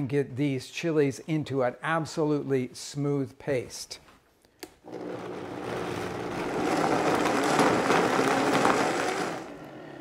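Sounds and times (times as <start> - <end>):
blender running: 4.9 - 9.8.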